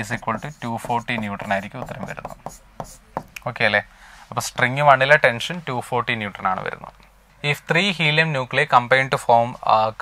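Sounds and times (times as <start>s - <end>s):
pen tapping and scraping on screen: 0.0s - 3.4s.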